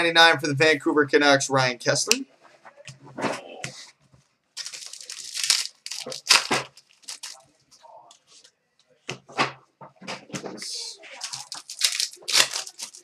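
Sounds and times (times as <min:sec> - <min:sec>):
cards being handled: 0:04.6 - 0:07.4, 0:11.2 - 0:13.0
foil wrapper tearing and crinkling: 0:04.6 - 0:07.4, 0:11.2 - 0:13.0.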